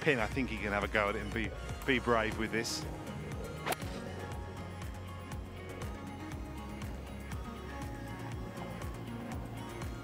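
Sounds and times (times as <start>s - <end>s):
background music: 0.0s - 10.0s
golf club striking ball: 3.6s - 4.0s.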